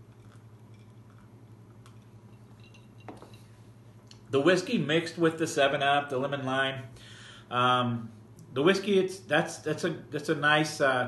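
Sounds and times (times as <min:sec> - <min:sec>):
ice clinking against glass: 0:00.1 - 0:03.5.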